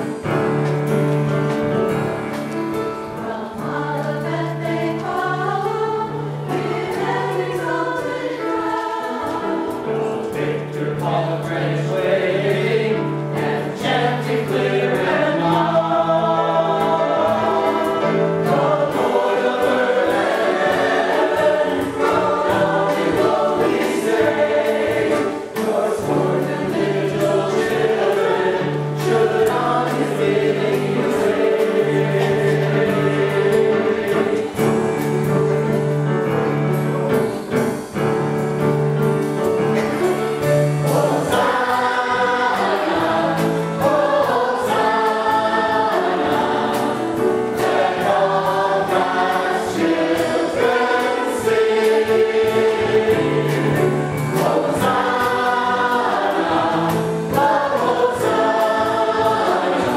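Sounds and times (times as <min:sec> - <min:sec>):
choir singing a hymn: 0:00.0 - 0:59.9
instrumental accompaniment: 0:00.0 - 0:59.9.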